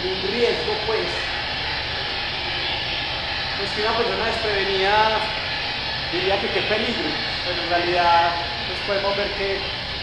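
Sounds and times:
tesla coil discharges buzzing: 0.0s - 10.0s.

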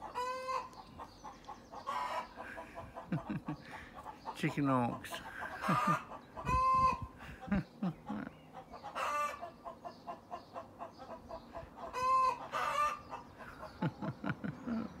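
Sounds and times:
chickens clucking: 0.0s - 15.0s.

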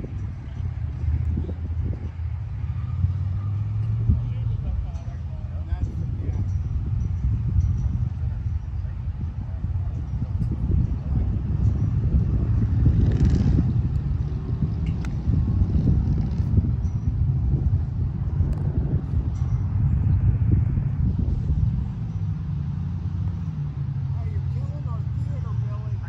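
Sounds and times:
low rumbling noise: 0.0s - 26.0s.

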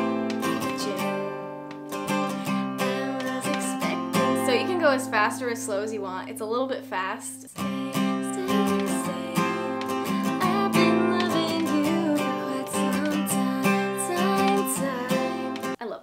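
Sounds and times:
acoustic guitar strumming: 0.0s - 15.8s.

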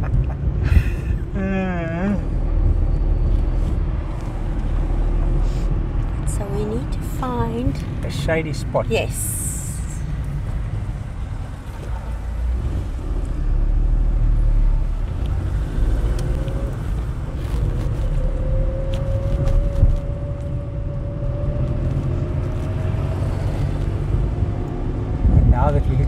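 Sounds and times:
car road and engine rumble: 0.0s - 26.0s.

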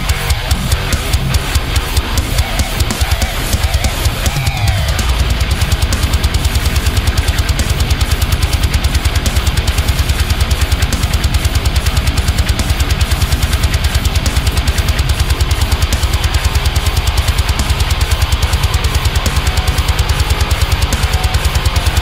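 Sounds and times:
drums: 0.0s - 22.0s
heavy metal electric guitar: 0.0s - 22.0s.

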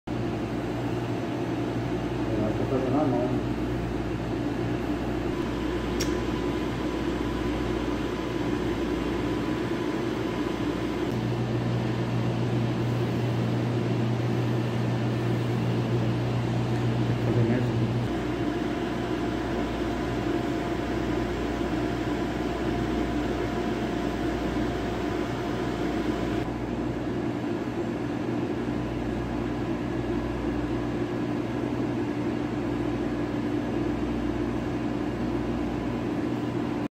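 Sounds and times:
refrigeration equipment humming: 0.1s - 36.9s
deeper hum: 0.2s - 26.8s.

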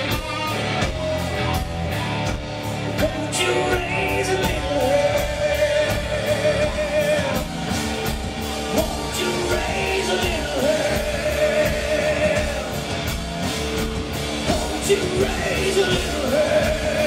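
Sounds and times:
live hard rock band: 0.0s - 17.0s
wavering held vocals: 8.4s - 12.9s.

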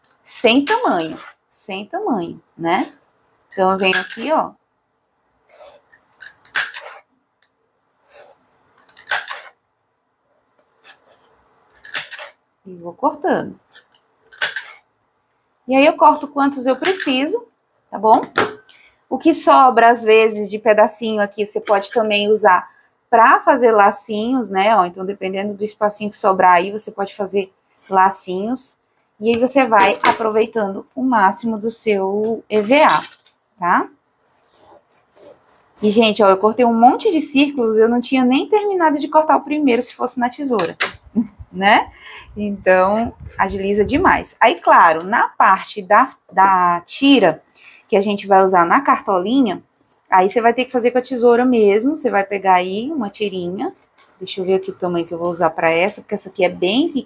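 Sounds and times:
scissors cutting foam: 5.5s - 7.1s, 10.6s - 12.4s, 34.2s - 38.4s, 52.8s - 57.0s.

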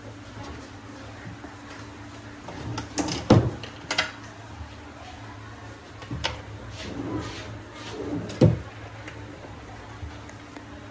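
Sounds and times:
drawer sliding on metal rails: 2.4s - 4.1s, 6.1s - 8.8s.

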